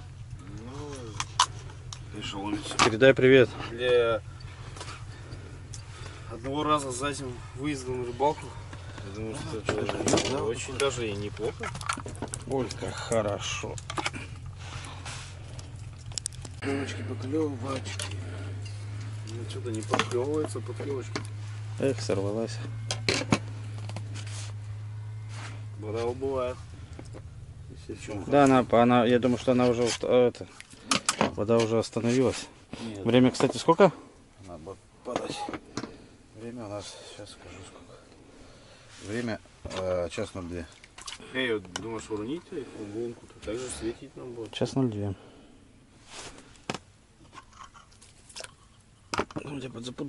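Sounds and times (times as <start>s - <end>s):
rustle: 0.0s - 50.0s
steady low hum: 0.0s - 50.0s
soft rustle: 14.2s - 16.6s, 23.4s - 27.3s, 36.0s - 41.0s, 45.9s - 49.0s.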